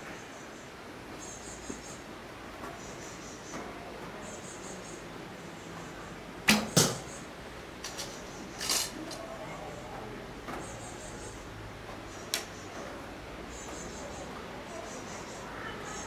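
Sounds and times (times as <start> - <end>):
arrow striking target: 6.5 - 7.0.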